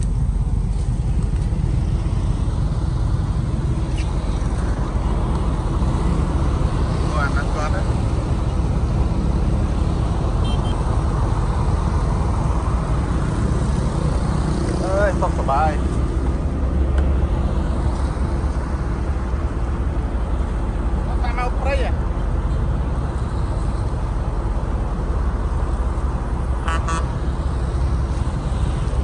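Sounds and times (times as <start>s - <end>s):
road traffic rumble: 0.0s - 29.0s.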